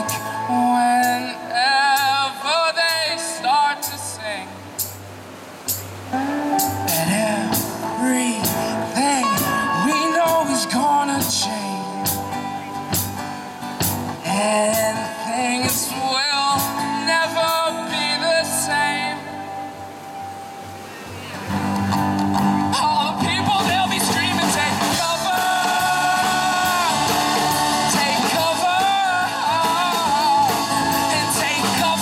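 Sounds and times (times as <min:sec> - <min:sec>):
acoustic band playing: 0:00.0 - 0:32.0.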